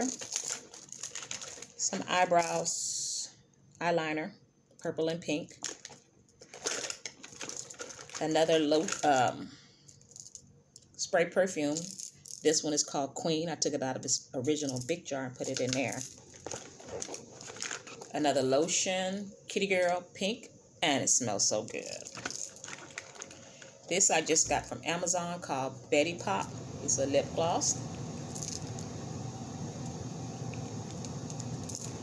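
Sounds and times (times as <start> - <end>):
plastic bottles and packaging rustling: 0.0 - 2.6, 5.5 - 9.4, 15.4 - 18.3, 21.6 - 24.7
low room hum: 0.0 - 32.0
plastic container clicks and rustles: 21.9 - 23.4.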